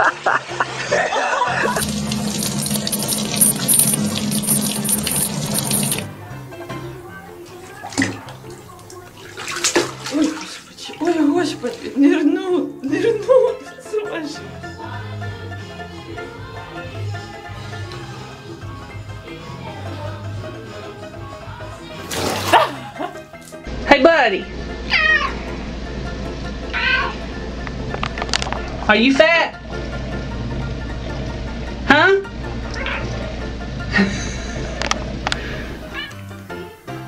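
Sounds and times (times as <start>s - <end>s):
water splashing in a bathtub: 1.7s - 6.1s, 7.4s - 12.3s, 21.9s - 23.6s
cat meowing: 24.9s - 25.4s, 26.7s - 27.2s, 32.8s - 33.1s, 35.9s - 36.2s.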